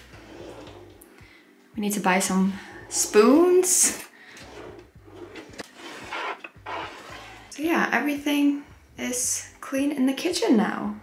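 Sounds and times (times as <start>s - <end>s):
drawers sliding open: 0.0s - 1.0s, 4.3s - 7.5s.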